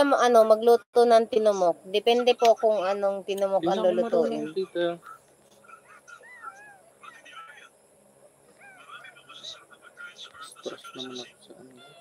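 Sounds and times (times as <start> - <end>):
high-pitched animal calls: 5.0 - 7.7, 8.5 - 9.6, 11.7 - 12.0.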